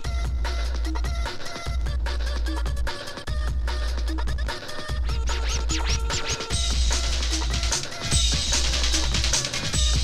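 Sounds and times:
breakbeat mix with heavy bass: 0.0s - 10.0s
record scratch sweeps: 5.1s - 7.7s.

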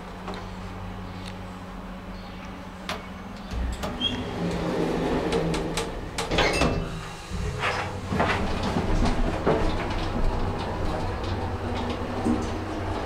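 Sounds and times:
hydraulic lift drive rumble: 1.8s - 13.0s
sliding door rattling shut: 3.5s - 13.0s.

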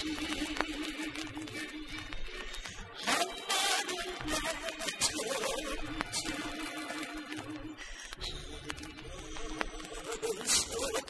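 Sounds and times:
pop record with wavering melody: 0.0s - 11.0s.

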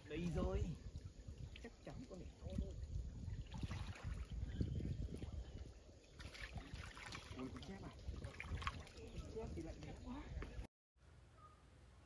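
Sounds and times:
water splashing and sloshing: 0.0s - 10.7s.

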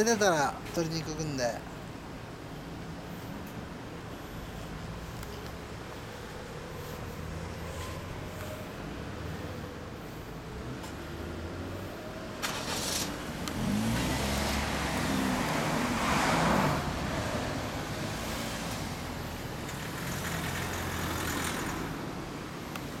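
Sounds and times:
motorcycle engines revving: 2.9s - 23.0s.

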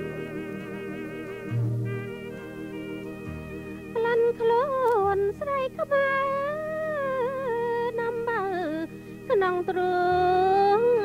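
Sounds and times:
low musical accompaniment: 0.0s - 11.0s
woman singing a long note: 4.0s - 11.0s.

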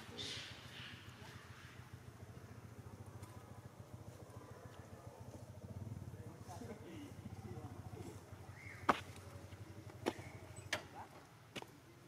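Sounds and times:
steady low motor hum: 0.0s - 10.7s.

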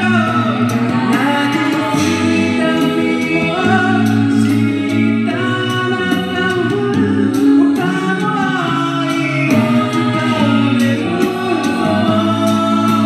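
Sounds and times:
a cappella group singing: 0.0s - 13.0s
sung bass line: 0.0s - 13.0s
vocal percussion beat: 0.0s - 13.0s.

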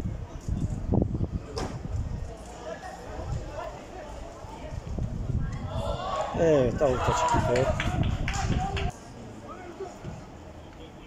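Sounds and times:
people shouting: 5.6s - 8.0s.

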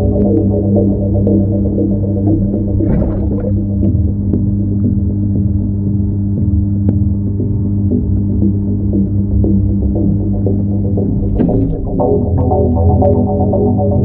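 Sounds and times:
muffled aquarium equipment hum: 0.0s - 14.0s.

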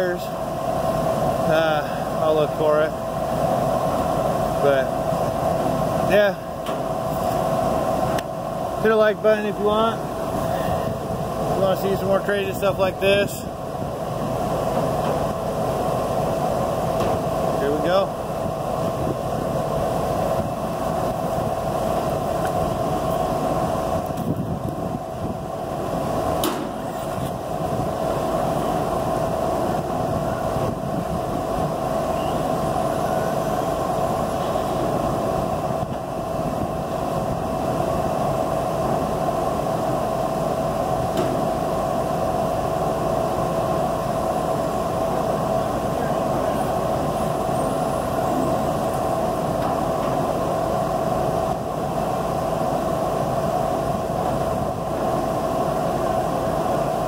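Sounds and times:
mechanical hum with rumble: 0.0s - 57.0s.

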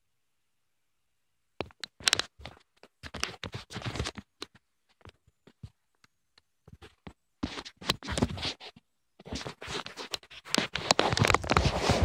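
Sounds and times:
fingers rubbing over microphone: 6.8s - 12.0s.

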